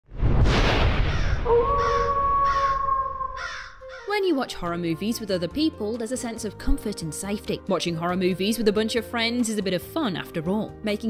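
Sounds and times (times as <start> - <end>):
crow cawing: 1.1 - 4.2.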